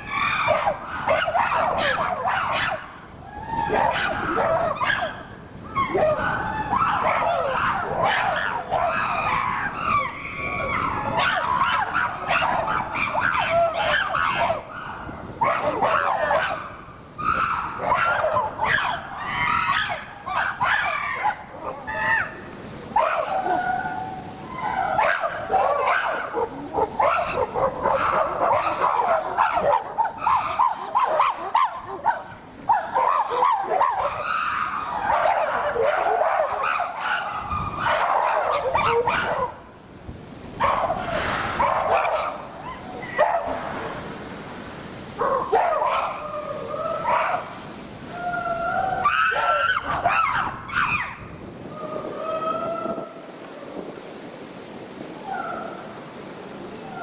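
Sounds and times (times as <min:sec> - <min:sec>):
chimpanzees calling and shrieking: 0:00.0 - 0:22.4, 0:23.0 - 0:39.5, 0:48.1 - 0:53.2.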